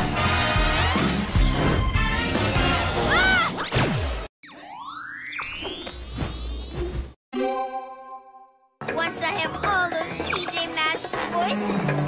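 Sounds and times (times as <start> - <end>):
music: 0.0 - 4.1, 7.4 - 12.0.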